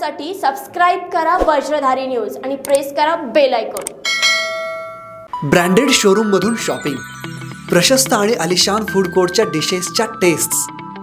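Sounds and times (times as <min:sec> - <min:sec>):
bell ding: 0:04.0 - 0:09.7.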